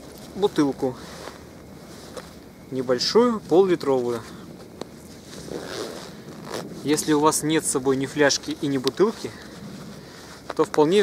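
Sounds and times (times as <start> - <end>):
plastic bottle scraping on jacket: 5.1 - 6.9.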